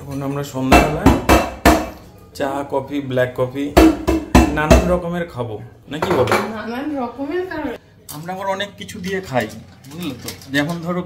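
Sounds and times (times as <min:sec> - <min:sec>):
dishes and cutlery clinking: 0:05.9 - 0:06.6.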